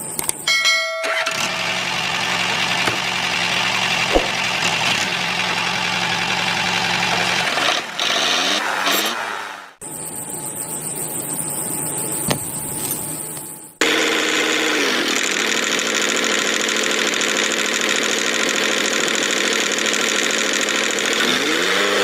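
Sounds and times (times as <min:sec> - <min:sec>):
small motor running: 0:13.8 - 0:22.0.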